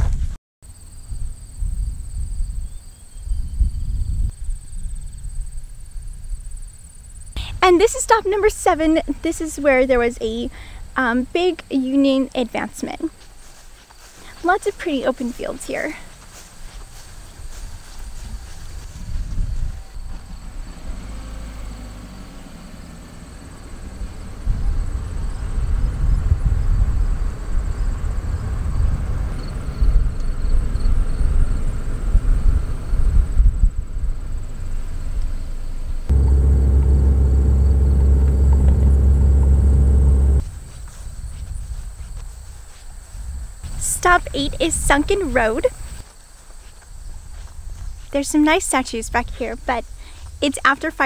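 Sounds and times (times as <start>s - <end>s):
road and wind rumble: 14.8s - 42.0s
steady low drone: 36.1s - 40.7s.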